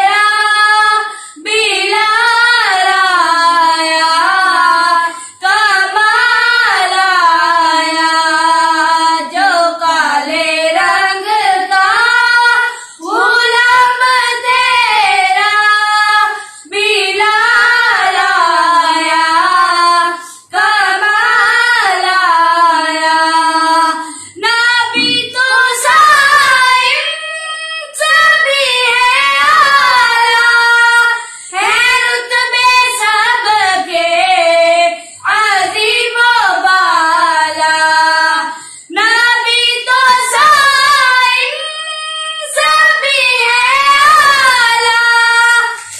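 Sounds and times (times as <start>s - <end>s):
children singing unaccompanied: 0.0s - 45.9s.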